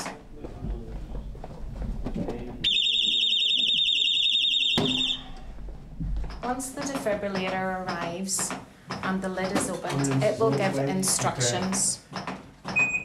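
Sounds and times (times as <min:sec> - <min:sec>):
electronic alarm warbling: 0:02.6 - 0:05.5.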